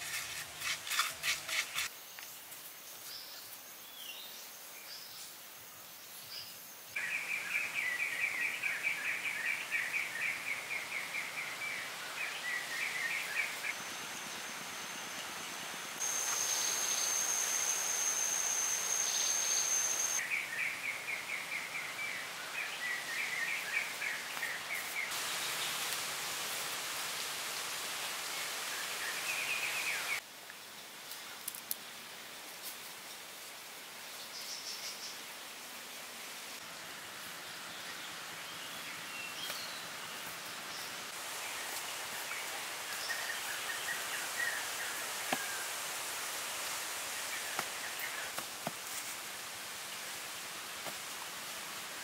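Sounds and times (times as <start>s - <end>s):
insects hissing: 13.4s - 20.2s
steady high whine: 13.8s - 20.2s.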